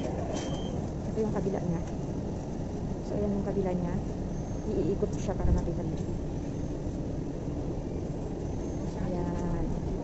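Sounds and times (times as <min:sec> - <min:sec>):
passengers' voices: 0:00.0 - 0:10.0
train carriage rumble: 0:00.0 - 0:10.0.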